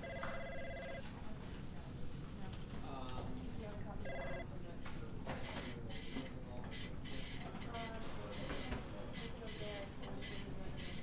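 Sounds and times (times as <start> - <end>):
electronic telephone ring: 0.0 - 1.0, 4.0 - 4.4.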